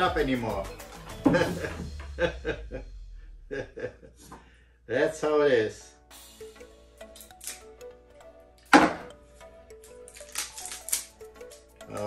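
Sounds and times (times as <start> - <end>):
background music: 0.0 - 4.1, 4.9 - 12.0
bottle seal clicks and crackles: 7.2 - 7.7, 9.7 - 12.0.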